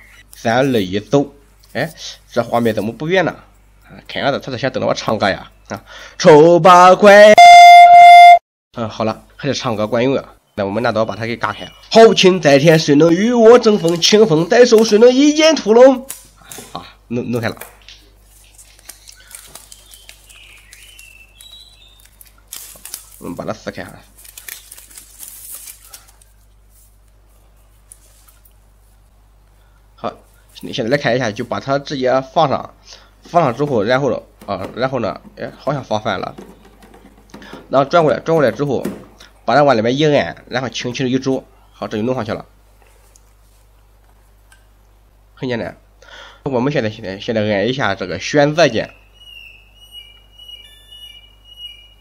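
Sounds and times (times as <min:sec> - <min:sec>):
electronic buzzer tones: 0:07.3 - 0:08.4, 0:49.9 - 0:52.0
plastic wrapping tearing and crinkling: 0:18.3 - 0:26.4.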